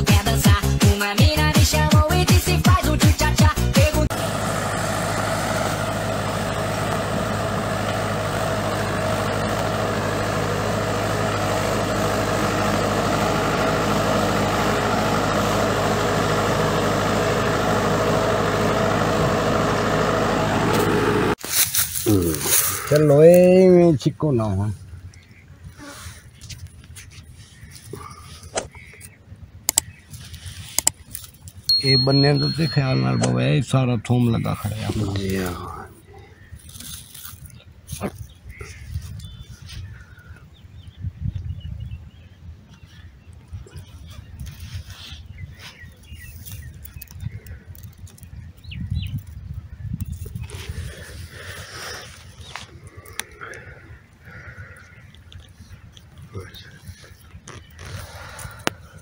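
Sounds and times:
rustles: 20.8 - 23.6, 29.8 - 31.7, 36.4 - 40.1, 42.7 - 59.0
faint bird calls: 24.9 - 30.6, 38.3 - 41.0, 50.6 - 59.0
sharp clicks: 28.6 - 30.0
wind buffeting microphone: 37.4 - 53.1.

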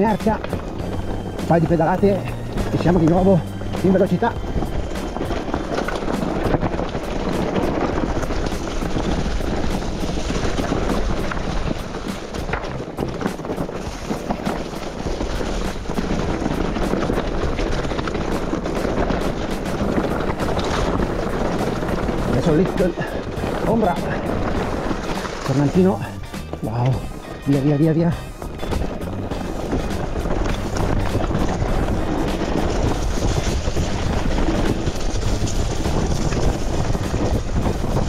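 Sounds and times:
bike rattling over stones: 0.0 - 38.0
wind and tyre noise: 0.0 - 38.0.

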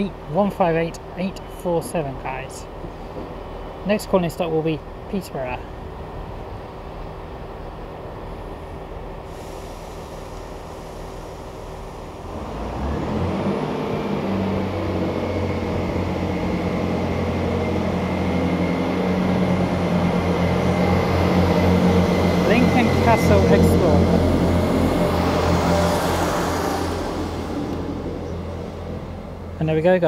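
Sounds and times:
diesel train idling hum: 0.0 - 30.0
diesel train pulling away: 0.0 - 30.0.

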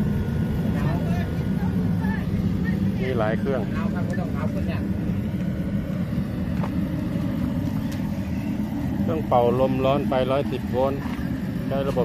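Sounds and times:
machine rumbling: 0.0 - 12.0.

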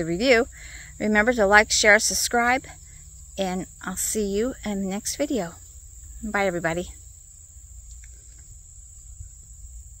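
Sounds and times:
insects trilling: 0.0 - 10.0
wind rumble on microphone: 8.2 - 10.0.

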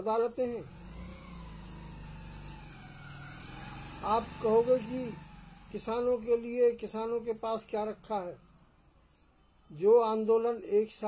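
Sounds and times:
machine humming: 0.6 - 8.7.

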